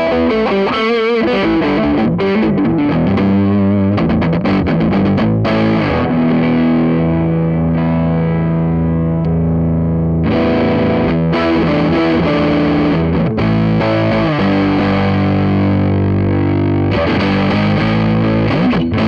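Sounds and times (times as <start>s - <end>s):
overdriven electric guitar: 0.0s - 19.0s.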